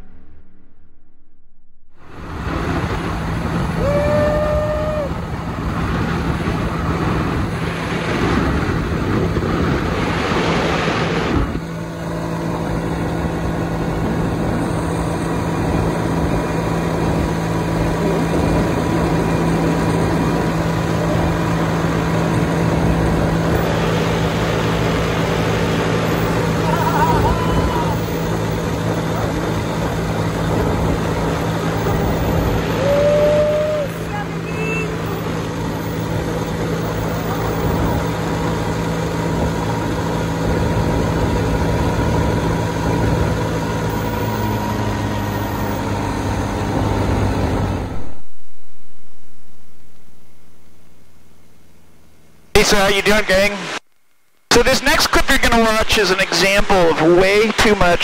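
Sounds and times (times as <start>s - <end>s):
propeller plane engine drone: 0.0s - 58.0s
wind buffeting microphone: 2.0s - 45.1s
short voice-like cries: 26.6s - 28.1s.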